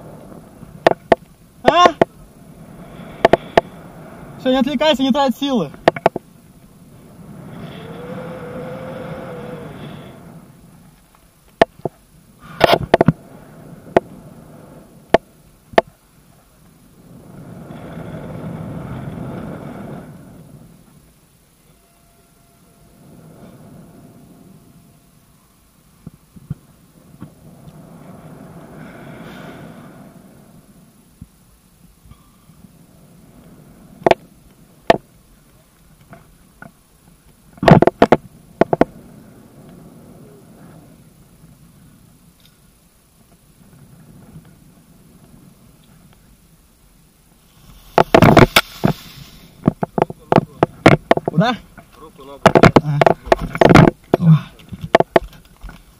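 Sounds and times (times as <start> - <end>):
wind rushing over microphone: 0.0 - 21.7, 22.6 - 55.9.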